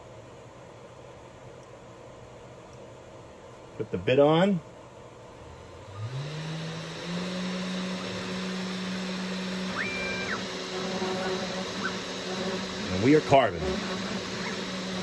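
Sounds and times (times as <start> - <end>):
router spindle humming: 5.5 - 15.0
stepper motors whining: 5.9 - 15.0.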